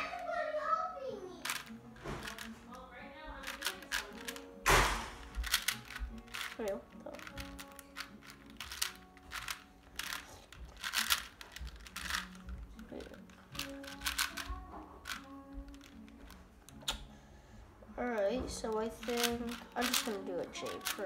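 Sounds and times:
puzzle cube layers clicking: 0:03.4 - 0:12.4, 0:13.0 - 0:16.3, 0:18.9 - 0:21.0.

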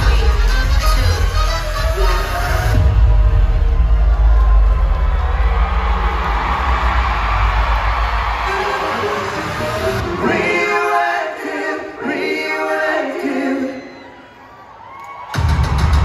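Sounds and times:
crowd cheering and screaming: 0:00.0 - 0:10.7, 0:13.6 - 0:16.0
concert music with deep bass: 0:00.0 - 0:10.8.

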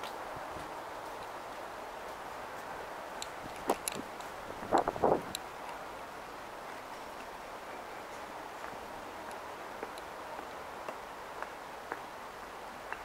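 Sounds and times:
city background hum: 0:00.0 - 0:13.0.

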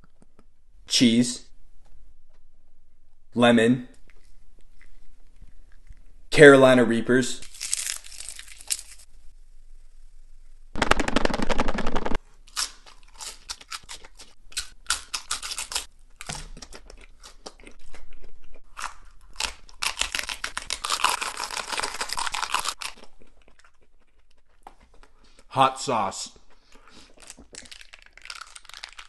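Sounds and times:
crunching and wet chewing: 0:07.4 - 0:09.1, 0:12.5 - 0:25.5, 0:26.3 - 0:29.0.

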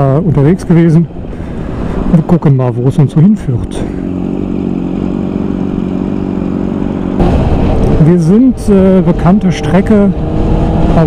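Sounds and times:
motorcycle engine running: 0:03.0 - 0:11.0.

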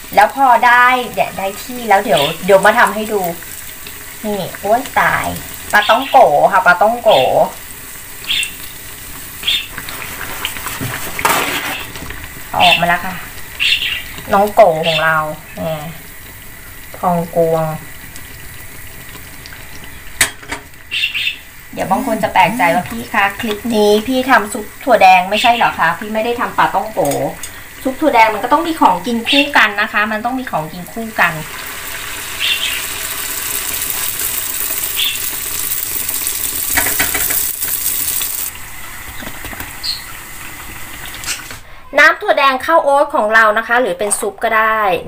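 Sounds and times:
oil sizzling in a frying pan: 0:00.0 - 0:41.7.

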